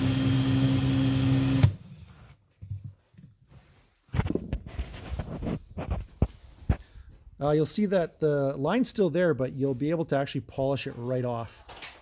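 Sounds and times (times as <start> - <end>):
cordless drill running: 0.0 - 1.8
handling knocks and rustles: 2.2 - 7.0, 9.6 - 12.0.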